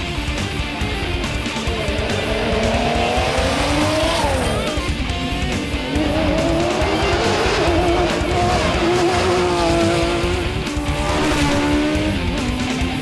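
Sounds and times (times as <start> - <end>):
background music: 0.0 - 13.0
racing engines driving hard: 0.0 - 13.0.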